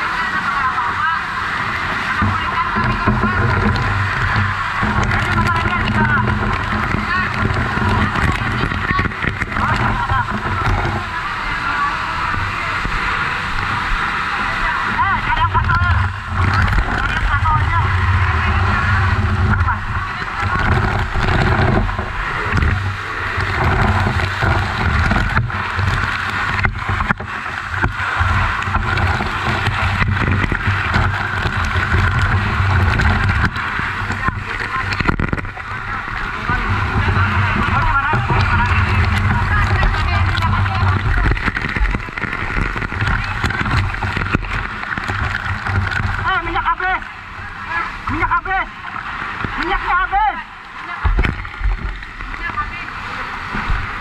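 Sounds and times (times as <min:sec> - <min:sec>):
background voices: 0:00.0 - 0:54.0
fire hose water spraying: 0:00.0 - 0:54.0
low rumble: 0:00.0 - 0:54.0.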